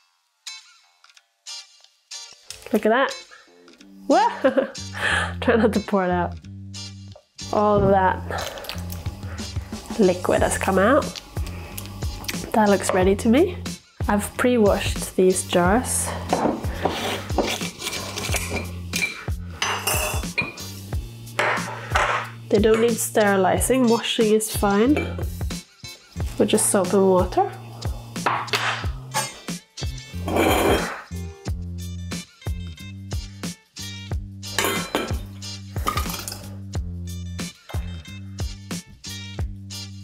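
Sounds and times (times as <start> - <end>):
background music with beat: 0.4 - 5.0, 6.5 - 40.0
glass jar set down: 16.3 - 16.6, 21.4 - 22.3, 28.2 - 29.4, 30.3 - 31.0, 34.6 - 36.4
metal ladle clinking on funnel and jar: 17.4 - 20.6, 30.2 - 31.0, 34.6 - 36.5.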